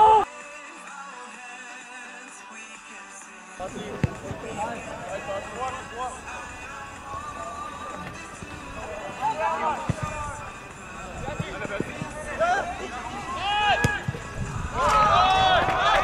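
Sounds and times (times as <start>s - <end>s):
sharp thumps: 3.6s - 9.2s
players shouting calls: 3.6s - 16.0s.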